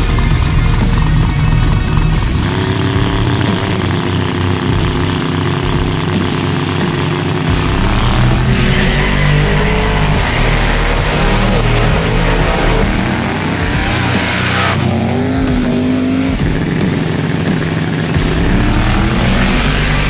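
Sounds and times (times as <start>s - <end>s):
drag car engines accelerating: 0.0s - 20.0s
music playing: 0.0s - 20.0s.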